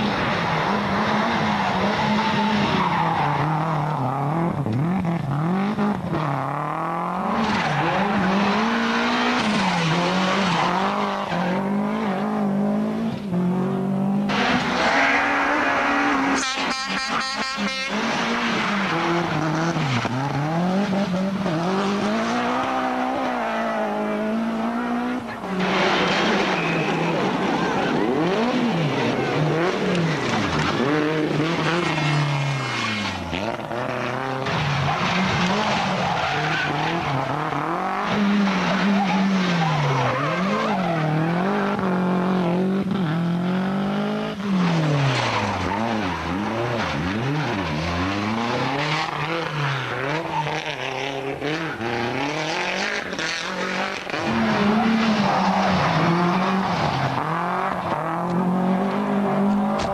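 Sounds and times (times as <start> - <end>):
tyres skidding on road: 0.0 - 13.2, 14.3 - 42.2, 44.3 - 59.9
rally car engine revving hard: 0.0 - 16.4, 17.8 - 59.9.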